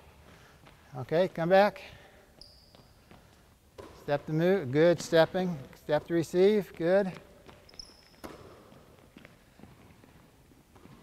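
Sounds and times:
sneaker squeak on hardwood: 0:02.4 - 0:03.1, 0:07.5 - 0:08.5.

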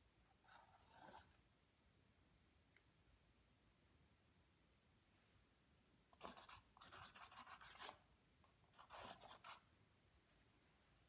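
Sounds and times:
marker scratching canvas: 0:00.4 - 0:01.4, 0:06.2 - 0:08.0, 0:08.7 - 0:09.7.

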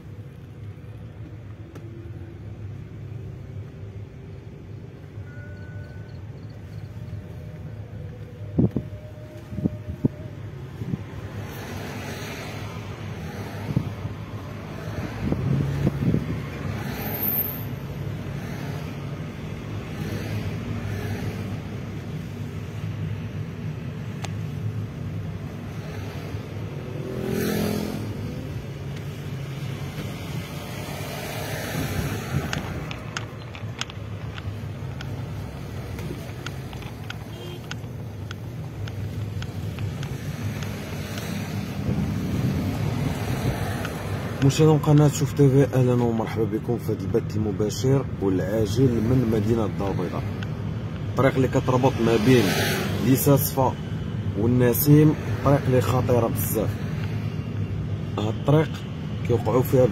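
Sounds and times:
car engine and road noise: 0:00.0 - 0:59.9
vehicles passing: 0:00.0 - 0:59.9.

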